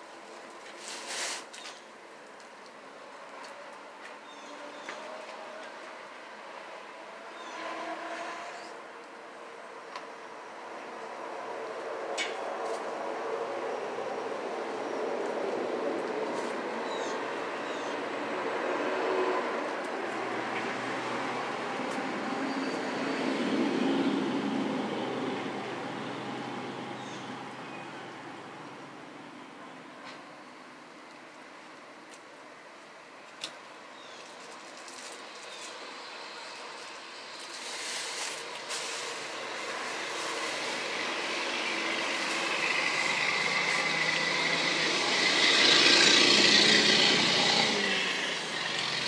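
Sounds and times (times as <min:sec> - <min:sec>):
vehicle passing: 0:10.6 - 0:29.6, 0:38.3 - 0:49.0.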